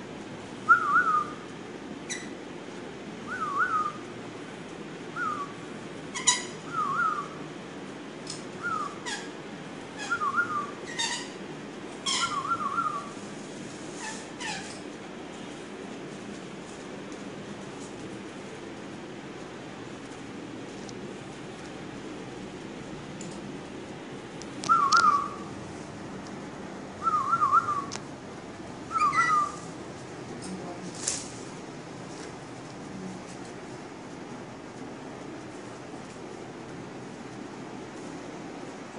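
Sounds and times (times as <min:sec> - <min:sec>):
wavering whistle: 0:00.7 - 0:01.4, 0:03.3 - 0:04.0, 0:05.2 - 0:05.6, 0:06.7 - 0:07.4, 0:08.6 - 0:09.1, 0:10.0 - 0:10.8, 0:12.2 - 0:13.1, 0:24.7 - 0:25.5, 0:27.0 - 0:27.9, 0:28.9 - 0:29.6
shrill parrot calls: 0:06.1 - 0:07.3, 0:08.6 - 0:09.4, 0:10.0 - 0:11.4, 0:12.0 - 0:13.1, 0:14.0 - 0:14.7, 0:24.7 - 0:25.5, 0:28.9 - 0:29.7.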